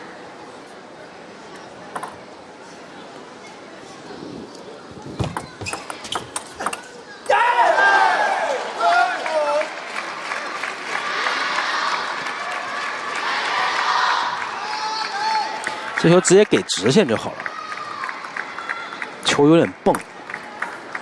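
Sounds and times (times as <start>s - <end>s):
crowd shouting and cheering: 7.2s - 21.0s
applause: 8.4s - 21.0s.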